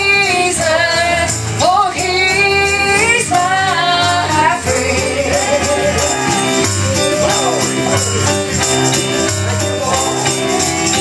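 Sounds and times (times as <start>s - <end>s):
woman singing gospel: 0.0s - 6.3s
instrumental accompaniment with bass: 0.0s - 11.0s.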